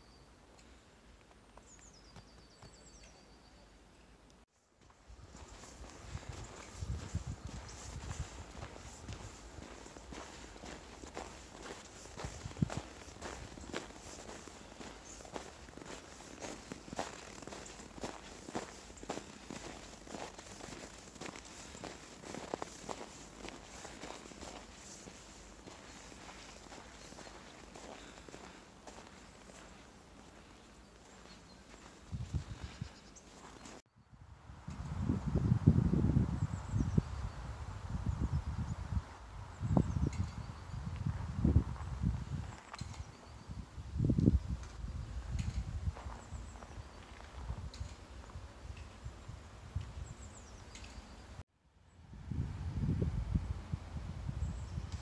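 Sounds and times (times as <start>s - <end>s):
footsteps crunching on snow: 4.8s - 33.8s, 45.4s - 48.4s.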